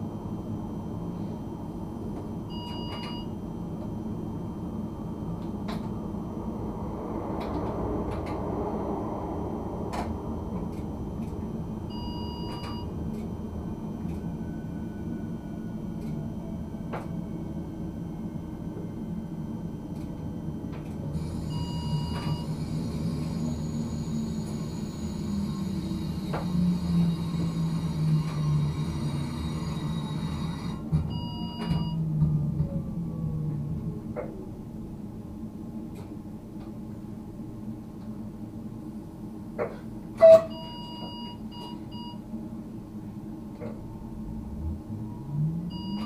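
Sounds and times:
train drive hum: 0.0 - 46.0
falling whine: 4.0 - 19.3, 43.0 - 46.0
short electronic beeps: 45.7 - 46.0.

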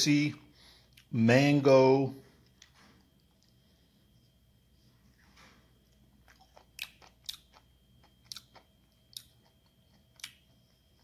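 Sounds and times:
wet chewing mouth clicks: 6.2 - 10.5.

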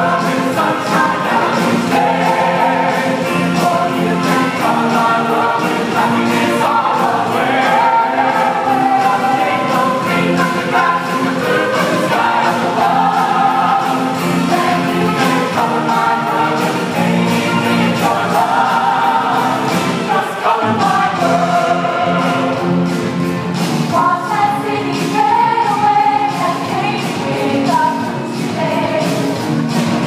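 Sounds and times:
mixed choir singing in harmony: 0.0 - 29.4.

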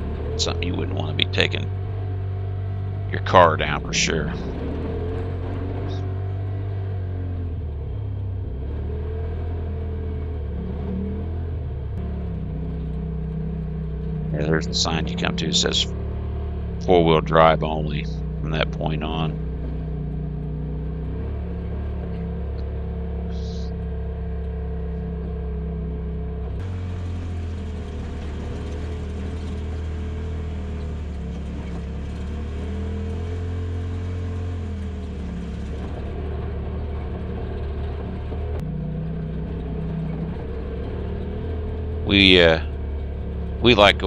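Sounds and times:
engine droning on dirt trail: 0.0 - 44.0.

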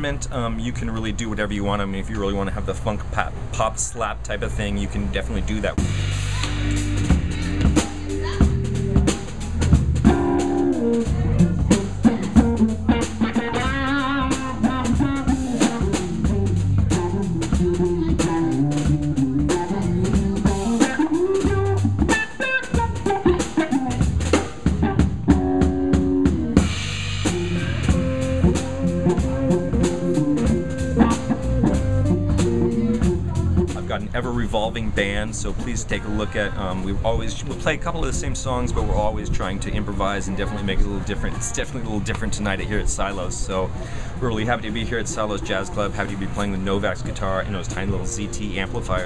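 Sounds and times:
guitar walking bass line: 0.0 - 49.0
drum kit: 5.6 - 36.3
electric guitar: 5.8 - 33.8.

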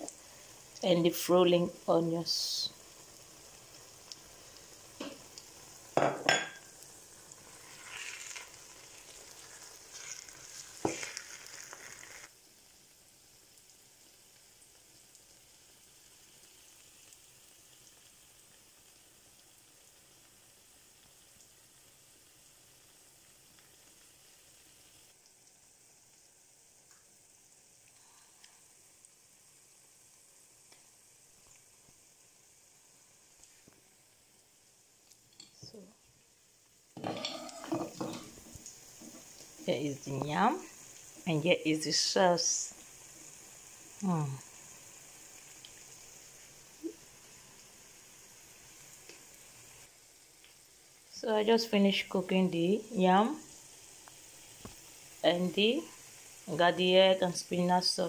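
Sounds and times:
sauce sizzling in frying pan: 0.0 - 58.0.

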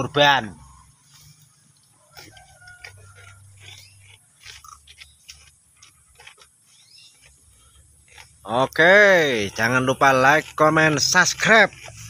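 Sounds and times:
goats chewing and crunching: 0.0 - 12.0
leaves rustling: 0.9 - 12.0.

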